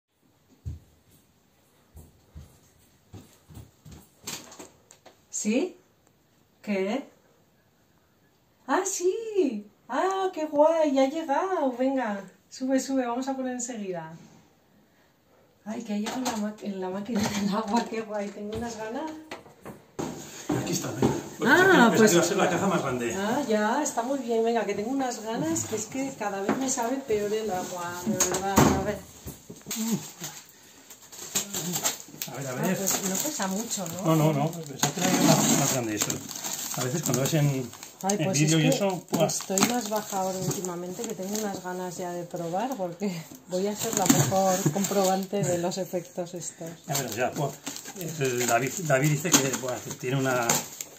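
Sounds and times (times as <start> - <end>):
soft footsteps indoors: 0.1 - 5.2, 18.4 - 23.5, 24.6 - 29.7.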